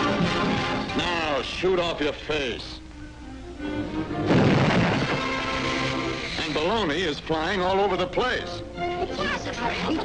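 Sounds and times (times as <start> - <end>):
soft orchestral music: 2.4 - 4.3
explosive burst sound effect: 4.2 - 6.4.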